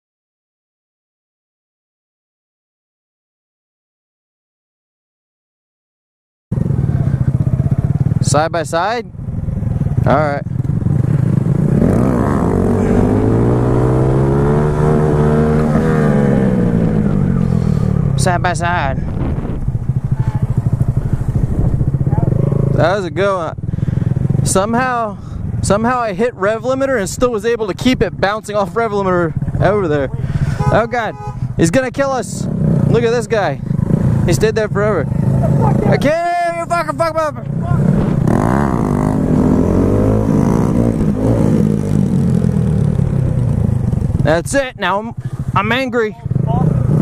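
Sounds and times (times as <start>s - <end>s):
motorcycle engine running at low revs: 6.5s - 36.4s, 37.4s - 47.0s
wind noise: 11.2s - 22.8s, 37.6s - 42.0s.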